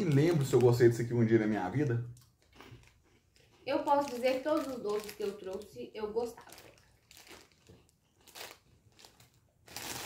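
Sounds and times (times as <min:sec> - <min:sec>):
plastic bag crinkling: 0:00.0 - 0:01.4, 0:02.2 - 0:10.0.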